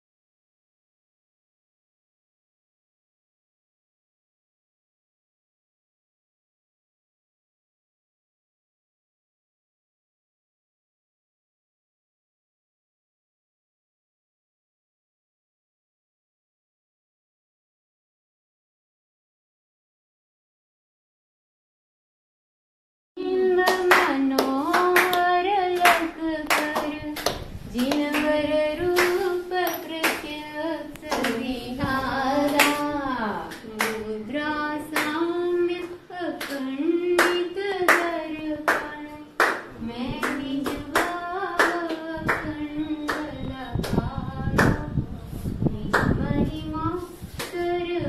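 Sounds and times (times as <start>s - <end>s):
person singing devotional song: 23.2s - 48.0s
hand-clapping: 23.7s - 31.5s, 32.4s - 32.9s, 33.5s - 34.0s, 34.9s - 35.2s, 35.8s - 44.9s, 45.9s - 46.2s, 47.4s - 47.6s.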